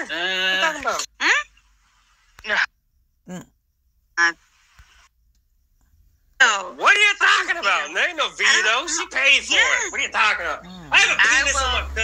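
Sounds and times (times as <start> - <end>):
faint hiss: 1.5 - 2.6, 4.2 - 5.2.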